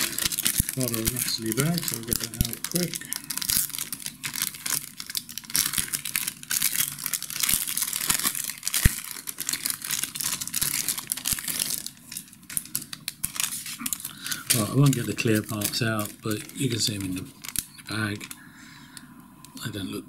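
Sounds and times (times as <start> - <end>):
plastic bag crinkling: 0.0 - 19.0.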